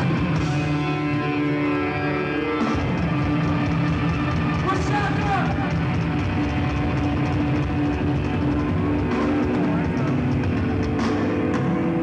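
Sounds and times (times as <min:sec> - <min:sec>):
bass and drums: 0:00.0 - 0:12.0
distorted electric guitar: 0:00.0 - 0:12.0.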